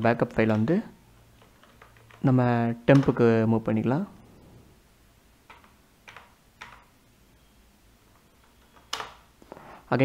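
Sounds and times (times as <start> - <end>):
faint keyboard keystrokes: 5.5 - 6.9, 8.1 - 9.3.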